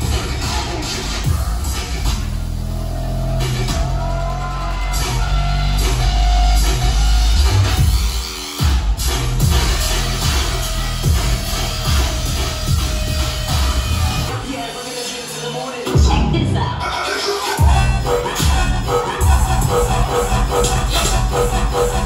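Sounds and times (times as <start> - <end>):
heavy sustained bass: 0.0 - 8.1, 17.6 - 22.0
dubstep music over club speakers: 0.0 - 22.0.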